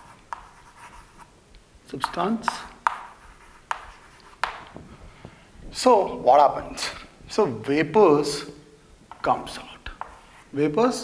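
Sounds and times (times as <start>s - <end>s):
chalk scratching on blackboard: 0.0s - 1.3s, 2.0s - 4.7s, 9.4s - 10.7s
chalk tapping board: 0.0s - 1.3s, 2.0s - 4.8s, 9.1s - 10.6s.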